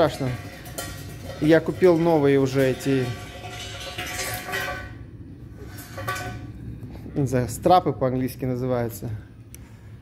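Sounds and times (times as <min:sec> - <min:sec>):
metal scraping across gravel: 0:00.0 - 0:05.0, 0:05.6 - 0:06.6.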